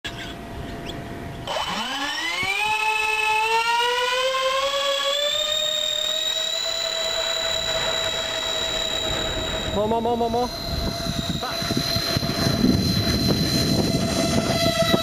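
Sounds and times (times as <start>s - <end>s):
electric fans whining: 0.1s - 15.0s.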